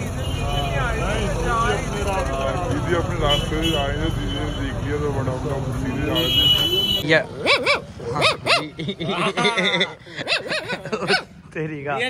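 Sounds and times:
man imitating dog barks: 7.2s - 9.1s, 10.2s - 11.4s.

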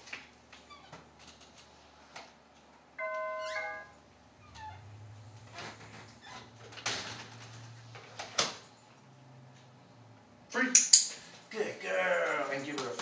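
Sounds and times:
doorbell chime ding-dong: 3.0s - 4.0s.

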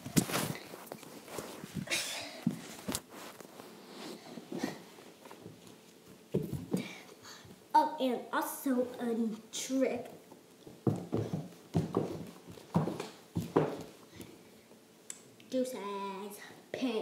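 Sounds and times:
knocks and shuffling on hardwood floor: 0.0s - 7.6s, 10.1s - 14.3s.

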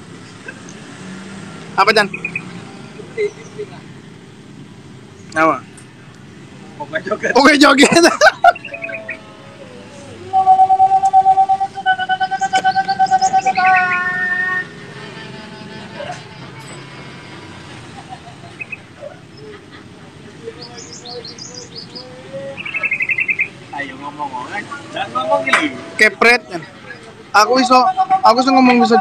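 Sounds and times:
high bird chirps: 2.0s - 2.6s, 8.3s - 9.2s, 10.2s - 14.9s, 18.4s - 19.6s, 20.4s - 24.0s
loud pulsing pitched call: 8.0s - 29.0s.

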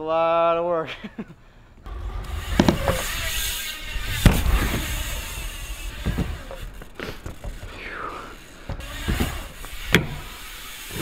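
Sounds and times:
bike tyres rumbling on ramp: 1.8s - 11.0s
loud sharp impact: 1.9s - 7.8s.

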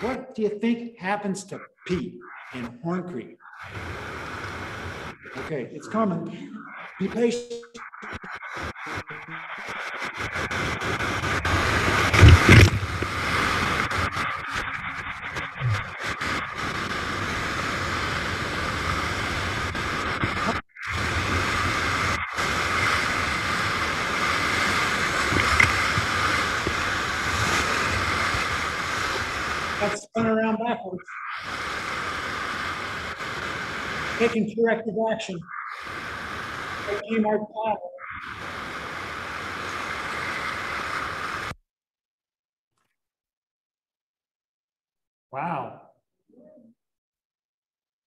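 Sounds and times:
whitewater rushing and crashing: 8.6s - 14.6s.

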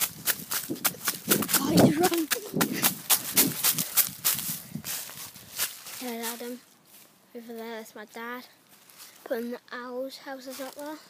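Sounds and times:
footsteps running through dry leaves: 0.0s - 6.5s
person calling out: 1.5s - 3.5s.

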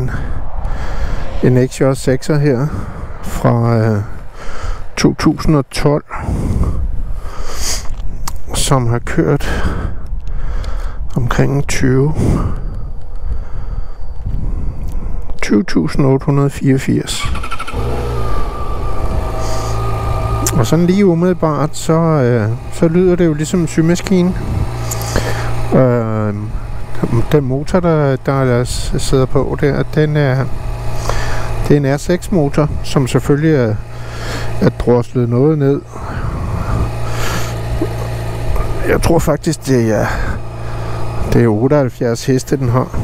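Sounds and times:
motorcycle engine cranking and idling: 16.8s - 43.0s.

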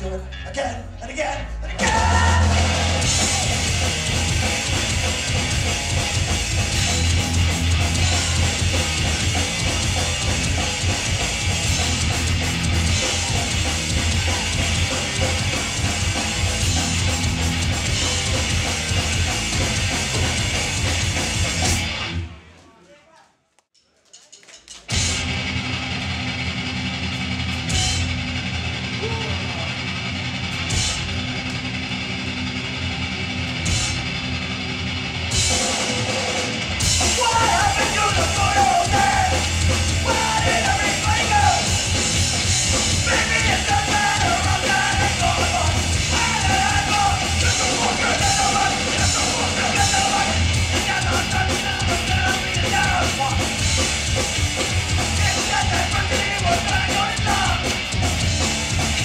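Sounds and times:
punk band playing live: 0.0s - 22.4s, 24.7s - 59.0s
crowd noise: 0.0s - 59.0s
shouted vocals: 1.7s - 3.8s, 28.9s - 29.8s, 37.0s - 41.8s, 43.0s - 53.5s, 55.0s - 57.8s.

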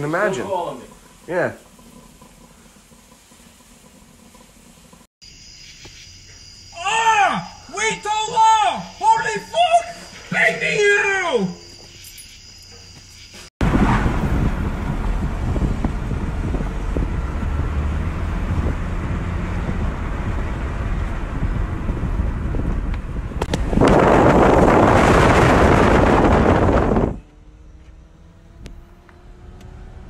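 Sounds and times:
car engine accelerating: 13.6s - 23.8s, 24.9s - 30.0s
road and wind noise in car: 13.6s - 30.0s.

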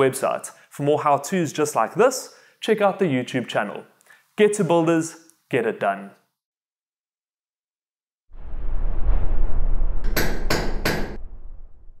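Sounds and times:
low bass rumble: 8.3s - 12.0s.

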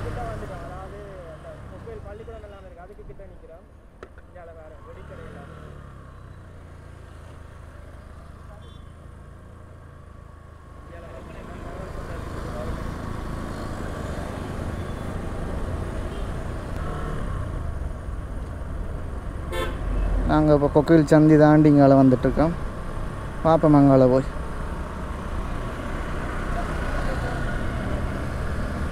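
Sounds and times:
road noise: 0.0s - 28.9s.

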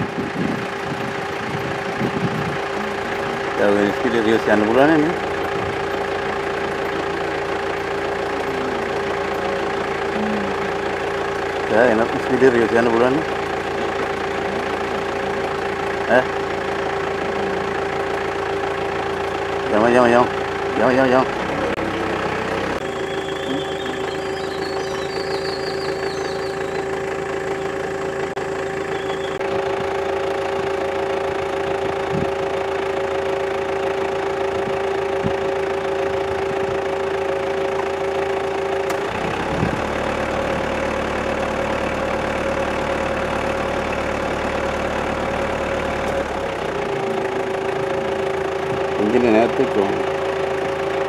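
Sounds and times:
vehicle engine idling: 0.0s - 51.0s.

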